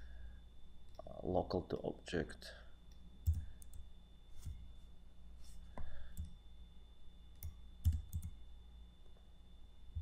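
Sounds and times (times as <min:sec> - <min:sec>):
faint steady hum: 0:00.0 - 0:10.0
computer mouse clicks: 0:07.4 - 0:08.4.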